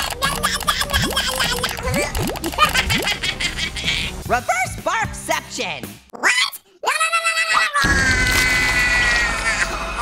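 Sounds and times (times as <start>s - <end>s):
cartoon vocal cry: 6.1s - 8.2s.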